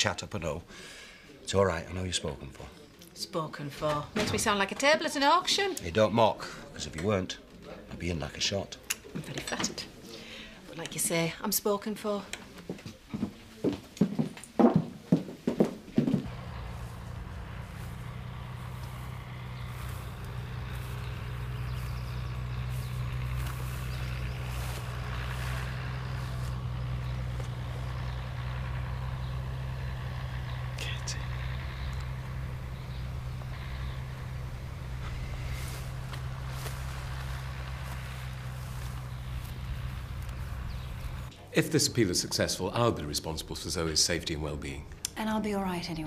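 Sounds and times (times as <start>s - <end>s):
open-air background noise: 0.0s - 46.0s
distant tractor engine droning: 16.0s - 41.4s.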